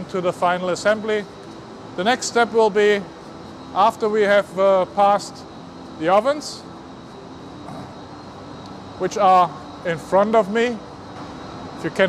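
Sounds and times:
factory machinery hum: 0.0s - 12.0s.

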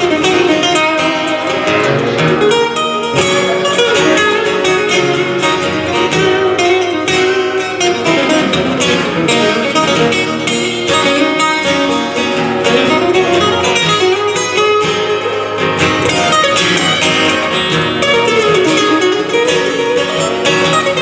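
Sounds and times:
acoustic guitars strummed: 0.0s - 21.0s.

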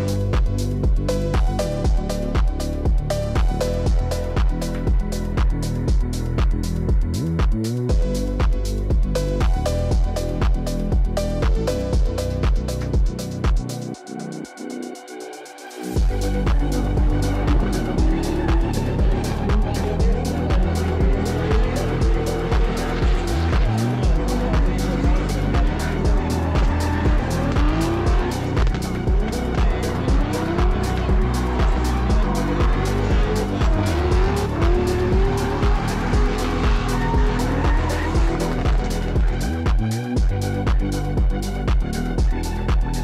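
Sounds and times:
electronic music with steady beat: 0.0s - 43.0s
car engines revving: 16.0s - 42.6s.

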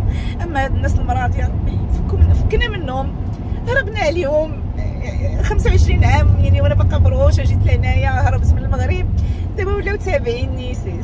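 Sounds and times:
car road and engine rumble: 0.0s - 11.0s
woman talking: 0.4s - 11.0s.

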